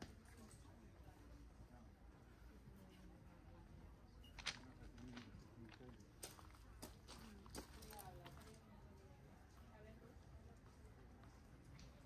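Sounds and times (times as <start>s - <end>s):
faint chatter of people: 0.0s - 12.0s.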